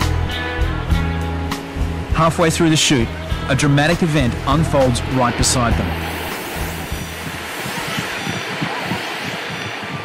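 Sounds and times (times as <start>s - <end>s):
low background music: 0.0s - 7.7s
surf breaking: 2.1s - 10.0s.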